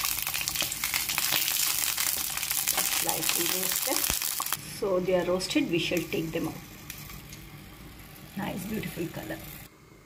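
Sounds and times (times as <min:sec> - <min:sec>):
chilies sizzling in oil: 0:00.0 - 0:10.0.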